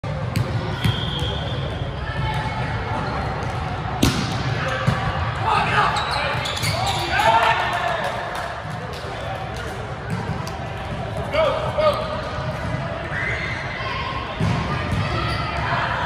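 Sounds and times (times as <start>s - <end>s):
volleyball being hit: 4.0s - 5.0s
players shouting: 4.5s - 8.2s.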